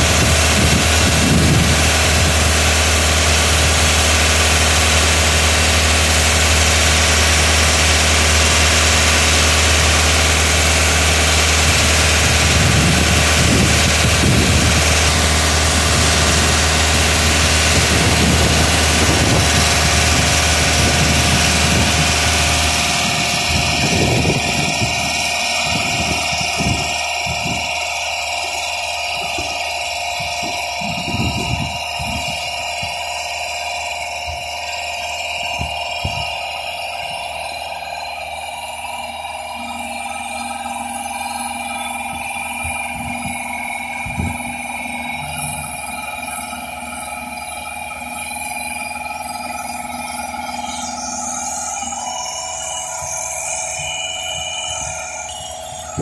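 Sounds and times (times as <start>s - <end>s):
boom lift machine drone: 0.0s - 56.0s
high even whine: 0.0s - 56.0s.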